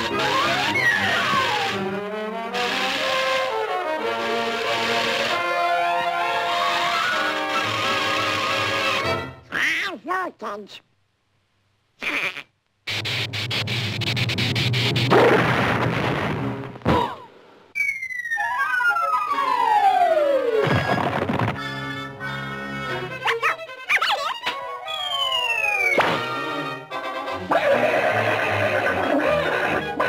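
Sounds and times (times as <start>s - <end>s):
orchestral music: 0.0s - 9.4s, 26.0s - 27.8s
cartoon duck quacking voice: 9.5s - 10.8s, 12.0s - 12.6s
falling whistle tone: 17.8s - 20.6s, 24.8s - 26.0s.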